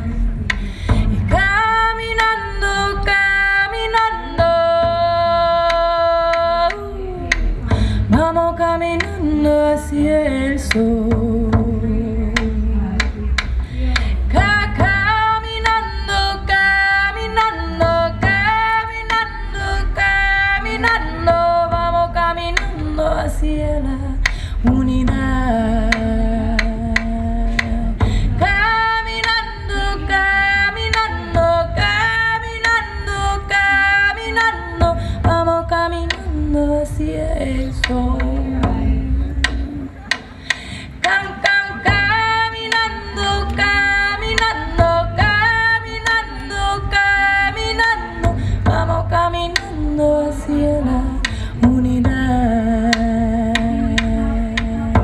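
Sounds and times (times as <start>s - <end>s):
frame drum beating: 0.0s - 55.0s
woman singing: 0.9s - 55.0s.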